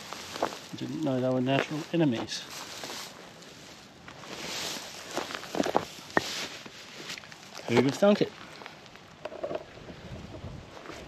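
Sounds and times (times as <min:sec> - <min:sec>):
footsteps crunching on straw: 0:00.0 - 0:08.9.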